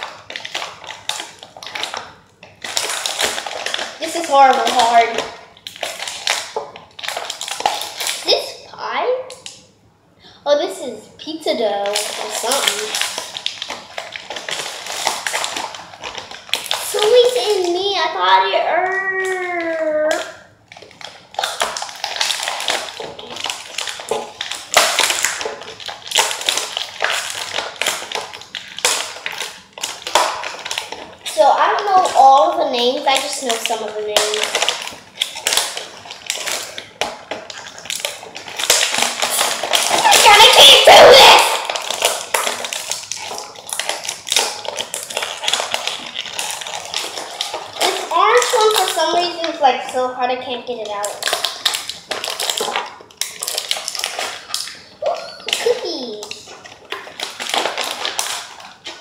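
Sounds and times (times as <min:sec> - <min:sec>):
plastic packaging crinkling: 0:00.0 - 0:59.0
child's voice: 0:04.0 - 0:05.3, 0:08.2 - 0:09.3, 0:10.4 - 0:13.0, 0:16.8 - 0:20.4, 0:31.3 - 0:34.6, 0:40.0 - 0:41.8, 0:47.8 - 0:51.2, 0:55.0 - 0:56.4.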